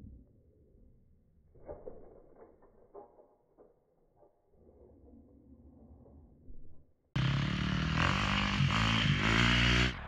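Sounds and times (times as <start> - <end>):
dirt bike engine revving: 7.2 - 10.0.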